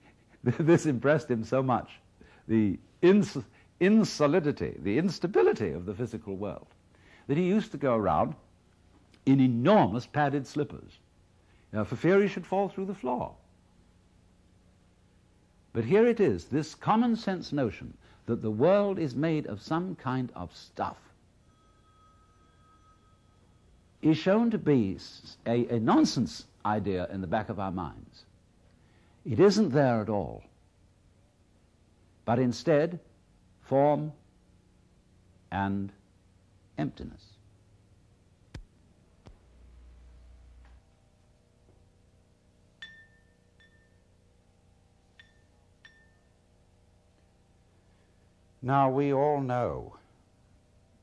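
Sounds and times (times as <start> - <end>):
faint recording hiss: 0.0 - 51.0
thin steady high tone: 18.5 - 26.6, 42.7 - 48.5
brush tapping ceramic bowl: 42.8 - 44.0, 45.1 - 46.3.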